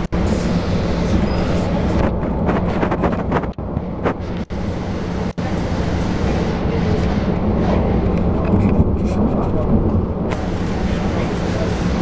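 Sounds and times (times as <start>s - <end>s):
train rumbling and rattling on rails: 0.0s - 12.0s.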